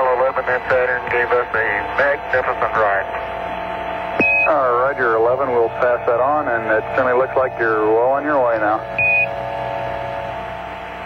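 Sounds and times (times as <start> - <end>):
radio hiss: 0.0 - 3.4, 4.2 - 8.9
faint multi-tone hum: 0.0 - 11.0
short high beep: 4.2 - 4.6, 9.0 - 9.3.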